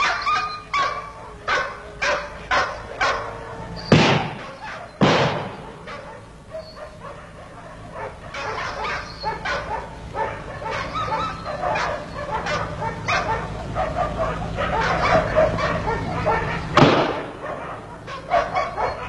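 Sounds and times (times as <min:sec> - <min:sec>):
dog barking: 0:00.0 - 0:19.0.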